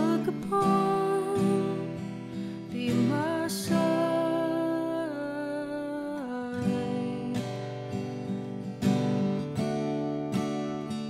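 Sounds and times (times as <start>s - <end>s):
woman singing: 0.0s - 8.5s
acoustic guitar strumming: 0.0s - 11.0s.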